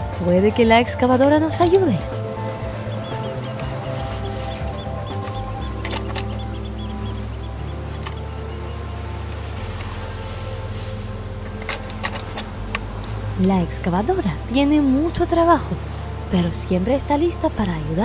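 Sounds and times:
background music with low notes: 0.0s - 18.0s.

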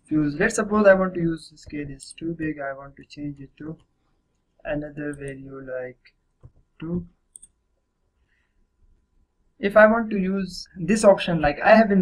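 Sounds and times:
computer mouse click: 7.3s - 7.6s.

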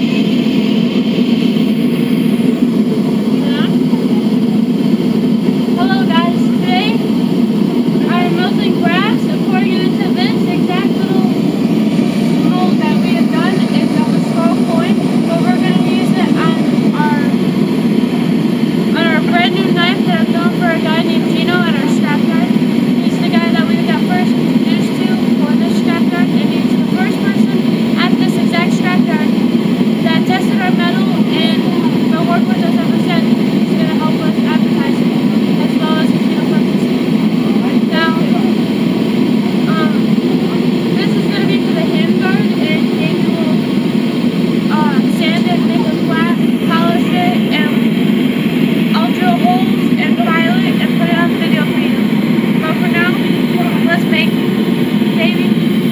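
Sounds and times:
low mechanical roar: 0.0s - 55.9s.

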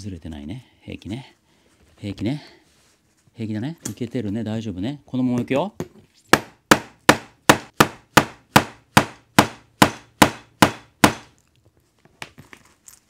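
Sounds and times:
faint handling sounds: 0.9s - 4.5s, 11.4s - 13.0s.

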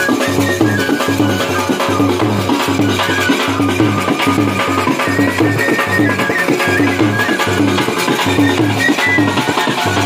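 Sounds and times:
dhol drums beating: 0.0s - 10.0s
wind instrument melody: 0.0s - 10.0s.

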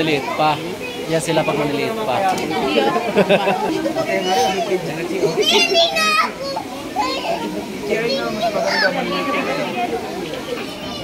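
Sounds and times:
adult voices: 0.0s - 11.0s.

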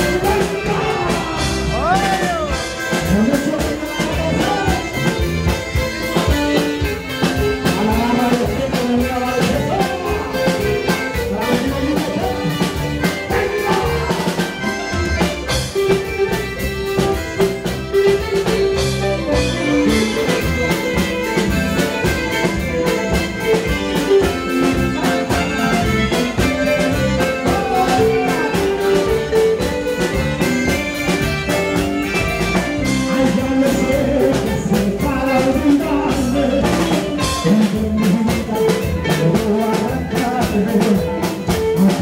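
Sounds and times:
electric bass guitar: 0.0s - 42.0s
live band playing dance music: 0.0s - 42.0s
steady drumbeat: 0.0s - 42.0s.

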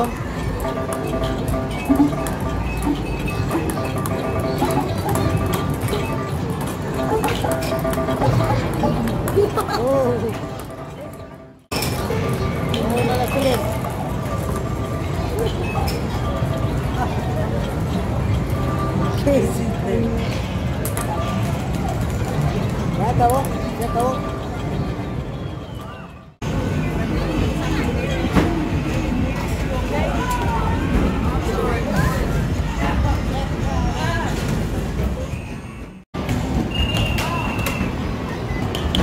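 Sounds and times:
arcade game music and jingles: 0.0s - 20.4s
crowd voices: 0.0s - 39.0s.

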